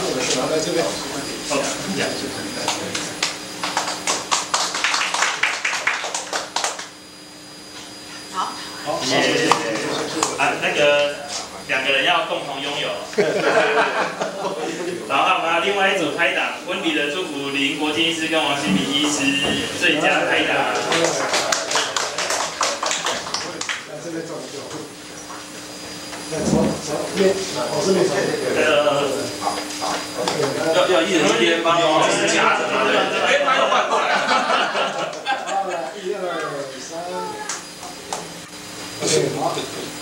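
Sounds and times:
people clapping: 2.6s - 7.0s, 9.4s - 11.1s, 20.6s - 24.0s, 34.8s - 35.6s.

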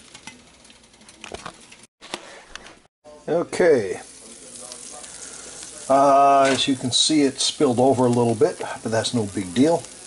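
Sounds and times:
egg sizzling in a frying pan: 3.4s - 10.0s.

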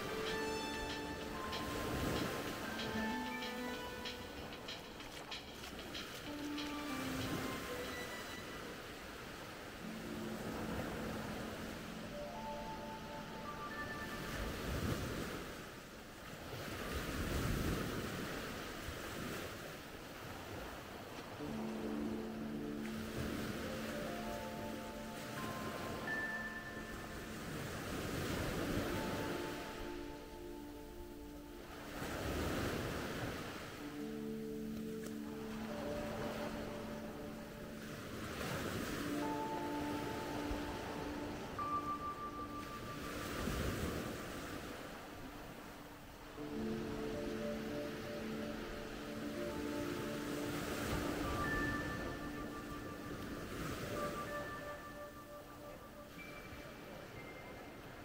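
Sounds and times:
music with long held notes: 0.0s - 15.5s, 21.3s - 57.9s
waves breaking on beach: 0.0s - 58.0s.

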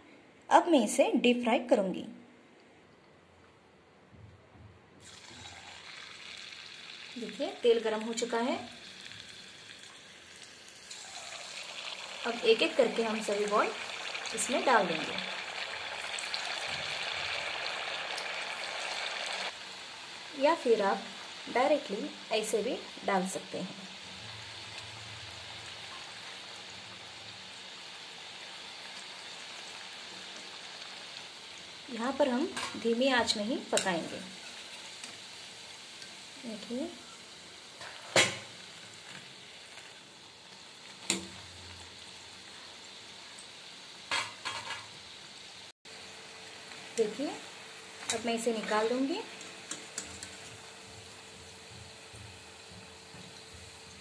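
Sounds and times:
oil sizzling in a wok: 5.0s - 54.0s.

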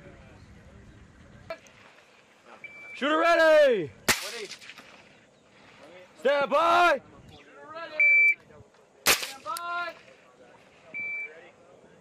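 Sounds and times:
short high beep: 2.6s - 3.0s, 8.0s - 8.4s, 11.0s - 11.4s.

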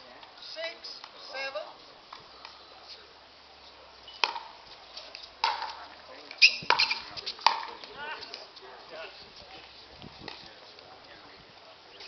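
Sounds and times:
paddles hitting plastic ball: 5.2s - 5.8s.

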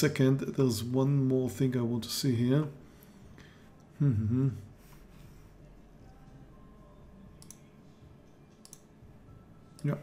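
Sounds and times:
computer mouse clicks: 7.4s - 7.6s, 8.5s - 8.9s.

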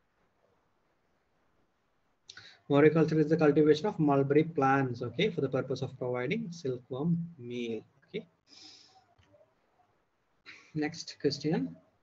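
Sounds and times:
man speaking: 2.7s - 7.8s, 10.8s - 11.9s.

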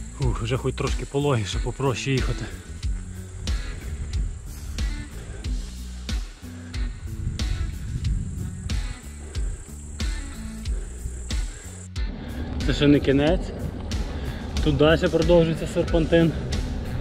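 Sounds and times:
music with drum beat and bass: 0.0s - 17.0s.

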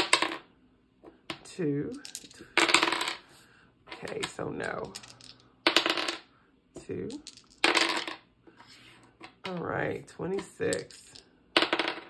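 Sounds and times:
dice clattering on desk: 0.0s - 0.4s, 1.3s - 3.2s, 3.9s - 6.3s, 6.9s - 8.2s, 10.4s - 12.0s.

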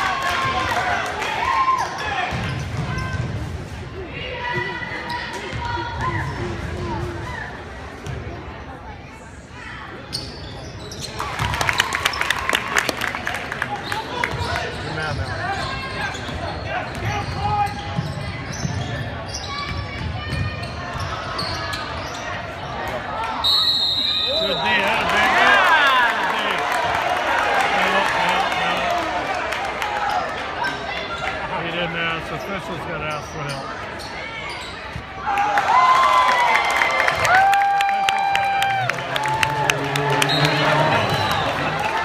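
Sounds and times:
spectators chattering: 0.0s - 42.0s
sneaker squeaks: 1.8s - 3.3s, 10.0s - 11.3s, 13.9s - 22.6s, 33.0s - 35.2s.

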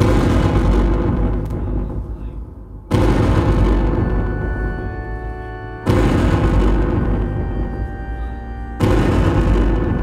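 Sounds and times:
loud distorted electronic noise: 2.9s - 10.0s.

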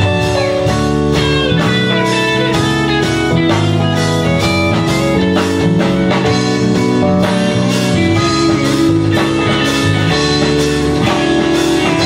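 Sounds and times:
electric guitar solo: 0.0s - 12.0s
keyboard accompaniment: 0.0s - 12.0s.

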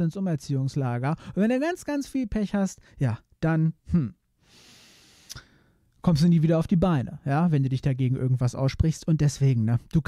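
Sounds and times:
man breathing into microphone: 4.4s - 5.8s.

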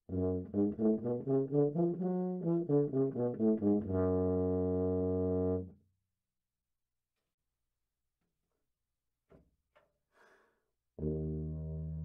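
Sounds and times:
tuba low sustained note: 0.1s - 5.7s, 11.0s - 12.0s.

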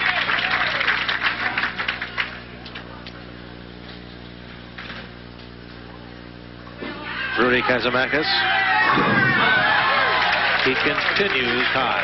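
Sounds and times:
audience applause: 0.0s - 2.8s, 8.2s - 12.0s.

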